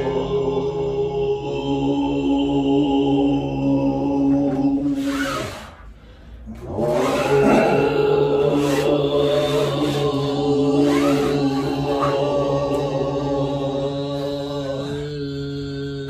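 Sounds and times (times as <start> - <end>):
overtone chanting: 0.0 - 16.0.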